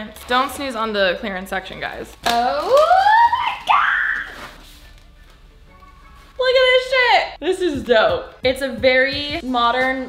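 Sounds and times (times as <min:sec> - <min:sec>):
woman exclaiming and squealing: 0:02.4 - 0:04.5.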